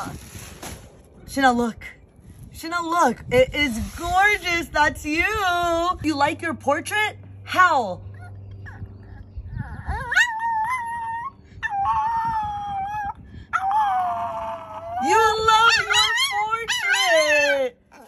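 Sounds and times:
small dog howling: 9.7 - 18.0.

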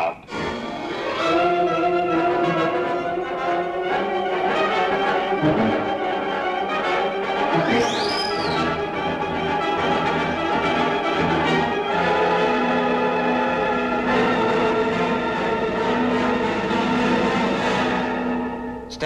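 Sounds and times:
orchestral music with brass: 0.3 - 19.0
high tone rising and falling: 7.6 - 8.9.

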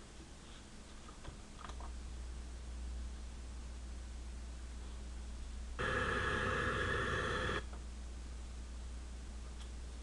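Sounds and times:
low room hum: 0.0 - 10.0
electronic buzzer tone: 5.8 - 7.6.

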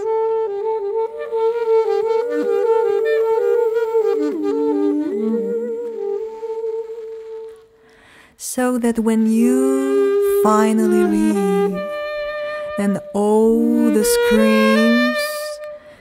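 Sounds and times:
wind instrument music: 0.0 - 8.0, 8.6 - 16.0.

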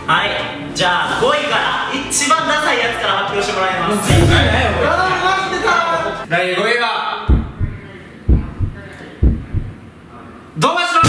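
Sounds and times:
heartbeat double thump: 4.1 - 5.1, 7.3 - 9.8.

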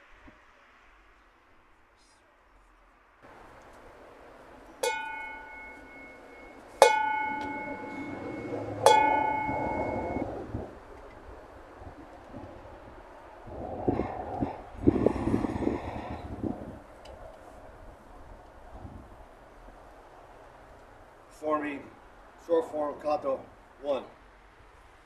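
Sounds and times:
bell ringing: 3.3 - 10.2.

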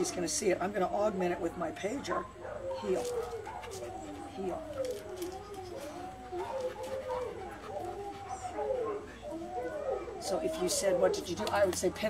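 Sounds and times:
dogs howling: 0.0 - 12.0.

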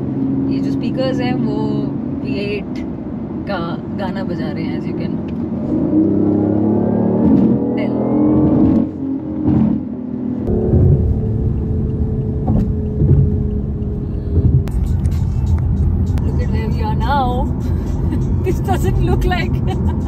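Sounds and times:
low rumble of road noise: 0.0 - 20.0
car engine note from inside cabin: 10.5 - 14.8.

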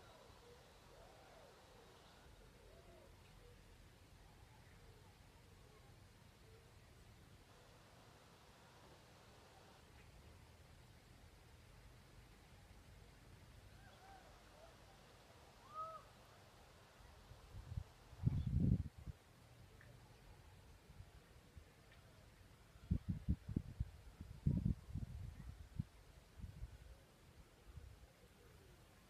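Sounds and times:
faint bird calls: 0.0 - 6.8, 13.6 - 17.5
wind buffeting microphone: 17.5 - 19.1, 22.9 - 26.7.

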